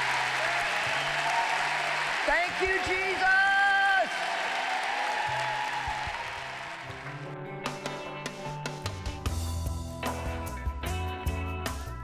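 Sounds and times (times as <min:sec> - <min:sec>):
audience applauding: 0:00.0 - 0:07.4
background music with bass line: 0:06.9 - 0:12.0.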